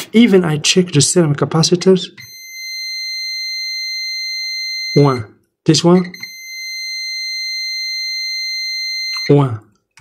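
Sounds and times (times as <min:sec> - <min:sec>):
multimeter continuity beep: 0:02.2 - 0:05.3, 0:06.0 - 0:09.4.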